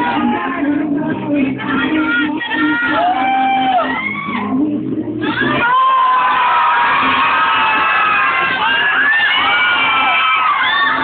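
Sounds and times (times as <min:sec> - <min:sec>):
crowd of women shrieking and cheering: 0:00.0 - 0:00.8, 0:01.8 - 0:11.0.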